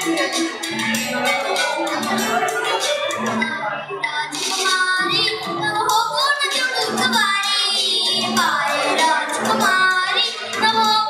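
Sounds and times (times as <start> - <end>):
child singing: 0.0 - 11.0
recorded backing track: 0.0 - 11.0.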